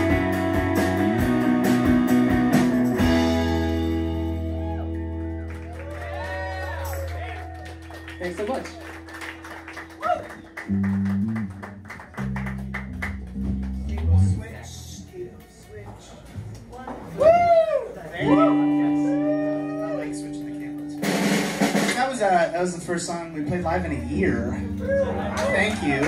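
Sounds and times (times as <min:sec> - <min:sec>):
guitar chords: 0:00.0 - 0:05.5, 0:09.1 - 0:14.6, 0:18.2 - 0:22.0, 0:23.4 - 0:26.0
bass notes: 0:00.0 - 0:15.4, 0:18.2 - 0:26.0.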